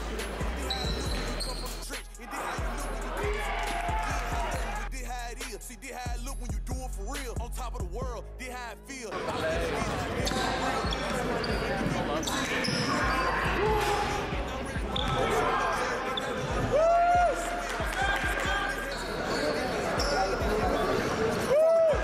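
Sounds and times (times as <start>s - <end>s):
sneakers squeaking: 0.0s - 2.7s, 9.2s - 16.8s, 17.4s - 21.5s
voices in echoing gym: 0.0s - 22.0s.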